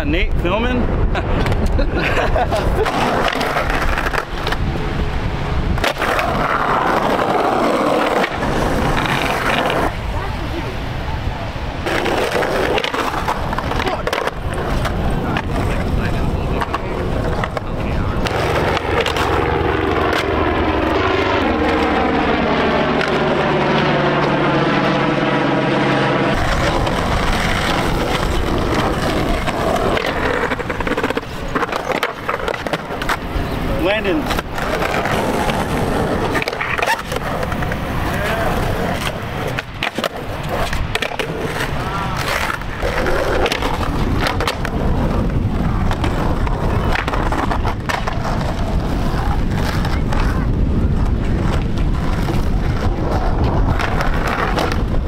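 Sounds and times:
skateboard wheels rolling on concrete: 0.0s - 55.0s
skateboard clacking and grinding curb: 1.0s - 10.7s, 11.8s - 25.1s, 26.2s - 55.0s.

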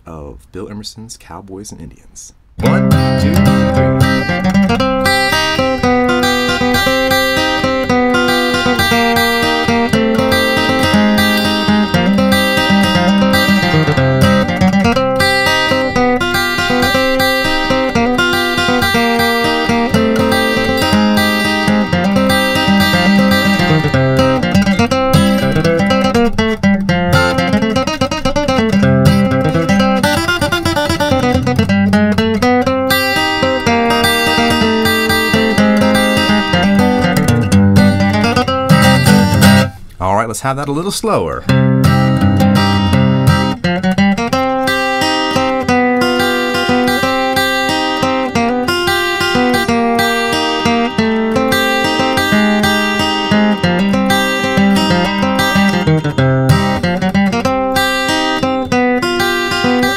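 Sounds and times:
acoustic guitar bluegrass instrumental: 2.4s - 59.9s.

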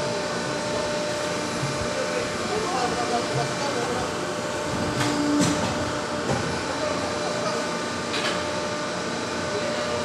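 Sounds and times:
roll-forming machine running: 0.0s - 10.0s.

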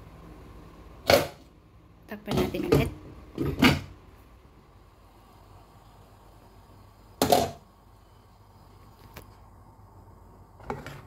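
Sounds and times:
pot boiling: 0.0s - 11.0s.

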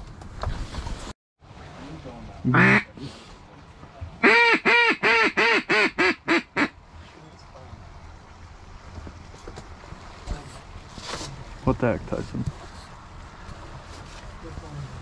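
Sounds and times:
duck quacking: 2.5s - 2.9s, 4.2s - 6.7s.

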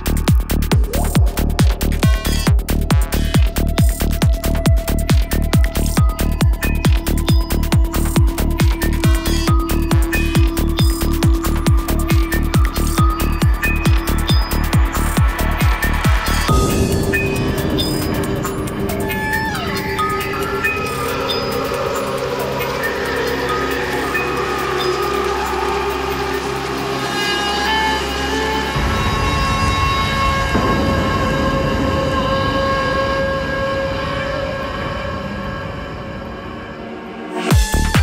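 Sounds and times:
sustained synth tones: 0.0s - 3.7s, 6.2s - 37.5s
crisp high percussion: 0.0s - 35.0s
bass drone: 0.0s - 38.0s.

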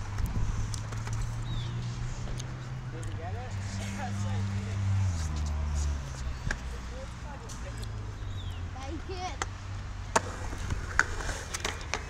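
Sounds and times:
scooter wheels rolling on concrete: 0.0s - 12.0s.

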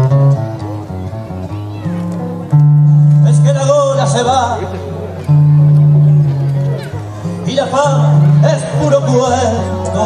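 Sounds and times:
acoustic guitar plucking a melody: 0.0s - 10.0s.

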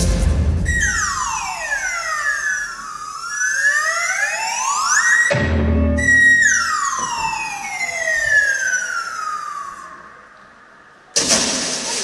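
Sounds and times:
loud crash burst: 0.0s - 1.9s, 11.2s - 12.0s
whistle-like tone sliding down: 0.6s - 5.3s, 5.9s - 10.0s.

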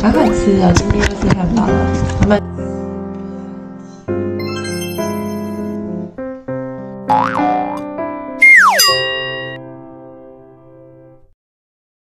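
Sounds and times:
background piano music: 0.0s - 11.3s
cartoon wobbling boing: 7.1s - 9.6s
whistle sliding down in pitch: 8.4s - 9.6s.

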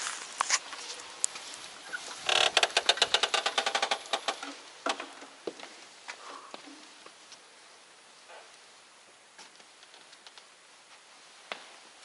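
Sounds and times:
door hinges creaking: 2.2s - 5.2s.

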